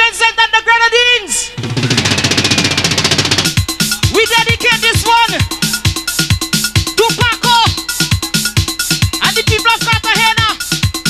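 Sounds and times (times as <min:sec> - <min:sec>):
drum roll on drum kit: 0:01.6 - 0:03.8
bass drum hits: 0:01.6 - 0:04.2
band playing instrument lines: 0:01.6 - 0:11.0.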